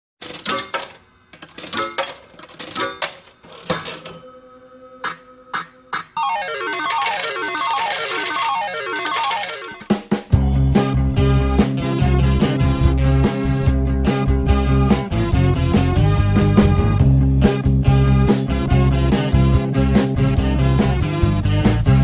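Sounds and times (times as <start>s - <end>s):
coins dropping: 0.2s - 4.2s, 6.6s - 9.9s
electronic jingle: 6.2s - 9.9s.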